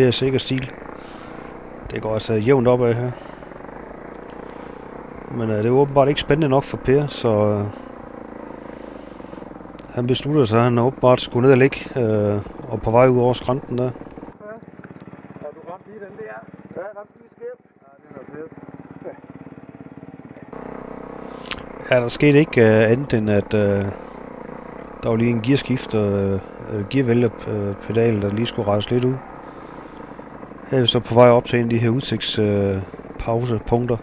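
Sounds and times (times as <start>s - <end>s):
people talking: 0.0s - 0.8s, 1.8s - 3.3s, 5.2s - 7.8s, 9.8s - 14.6s, 15.4s - 19.2s, 21.5s - 24.0s, 25.0s - 29.2s, 30.7s - 34.0s
motorcycle engine running: 0.0s - 34.0s.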